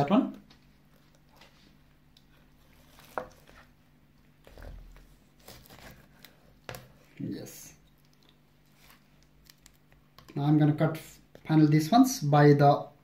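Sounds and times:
knife cutting fish on plastic board: 4.4 - 7.0.

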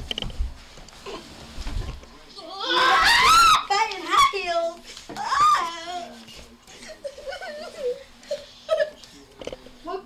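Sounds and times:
young woman screaming: 2.5 - 4.4.

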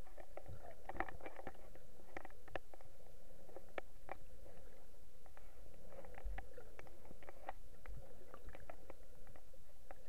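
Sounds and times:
faint steady hum: 0.0 - 10.0
underwater clicks and crackles: 0.0 - 10.0.

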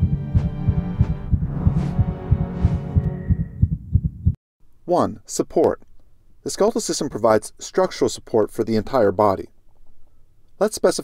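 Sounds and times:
fast throbbing pulse: 0.0 - 4.4
whooshes: 0.4 - 3.6.

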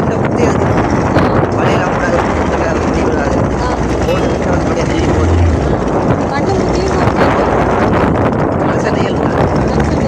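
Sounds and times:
motorboat engine rumbling: 0.0 - 10.0.

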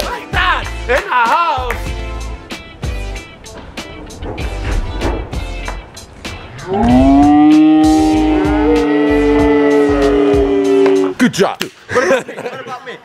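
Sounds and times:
background music with a beat: 0.0 - 12.0.

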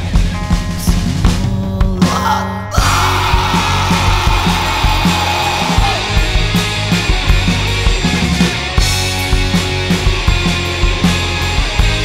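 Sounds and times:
pop-punk band playing: 0.0 - 12.0.

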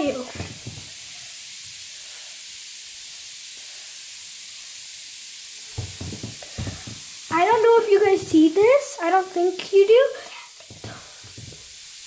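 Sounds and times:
fizzing hiss in water: 0.0 - 12.0
soft knocks: 0.3 - 0.9, 5.8 - 7.1, 10.6 - 11.6.

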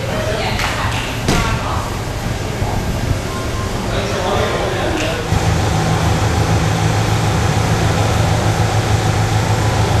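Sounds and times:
car engine idling: 5.2 - 10.0.

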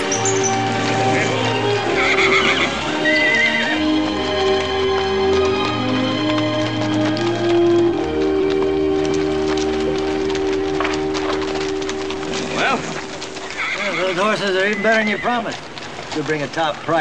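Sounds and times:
orchestral music: 0.0 - 15.0
horse hooves clip-clopping on dirt: 0.0 - 17.0
horse neighing: 0.2 - 4.0, 10.7 - 15.6.

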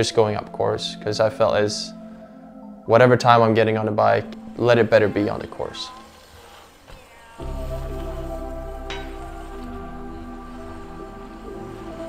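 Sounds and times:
soft sustained music tones: 0.0 - 12.0.

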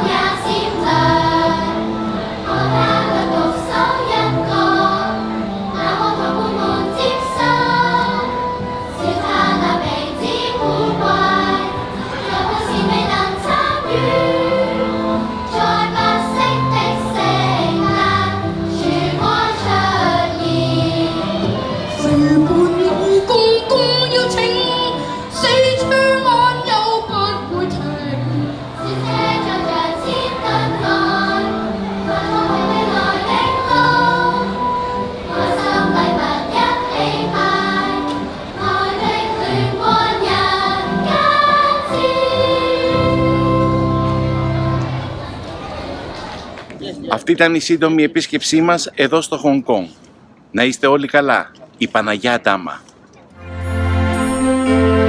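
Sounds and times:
choir singing with instruments: 0.0 - 45.3, 53.5 - 55.0.

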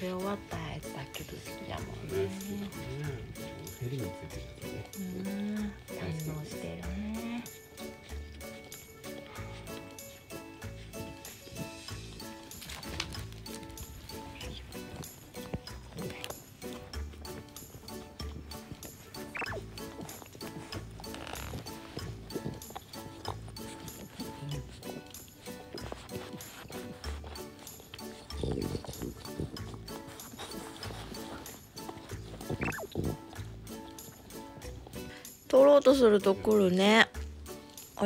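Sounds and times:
background music: 0.0 - 38.0.

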